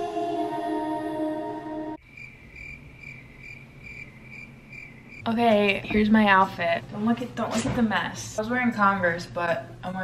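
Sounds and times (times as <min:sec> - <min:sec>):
background music: 0:00.0 - 0:02.0
cricket chirping: 0:02.0 - 0:05.3.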